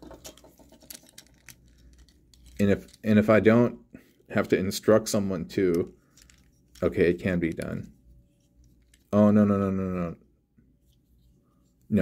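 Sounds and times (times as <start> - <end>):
plastic toy parts clicking: 0.0 - 3.0, 5.6 - 7.9, 8.6 - 9.2.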